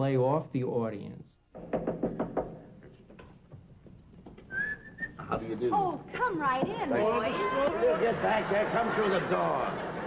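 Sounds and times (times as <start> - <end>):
whistled note: 4.5 - 5.2.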